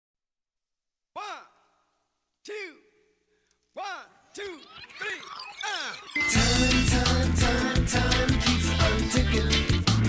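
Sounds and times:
person calling out word: 0:01.2 - 0:01.7.

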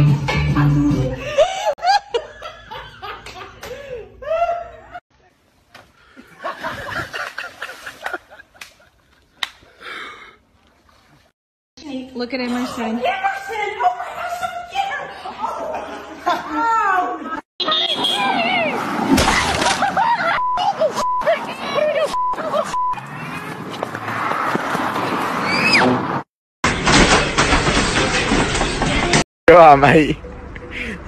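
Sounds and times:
people laughing: 0:06.2 - 0:09.5, 0:13.7 - 0:18.0, 0:19.6 - 0:22.8
man laughing: 0:19.8 - 0:22.8.

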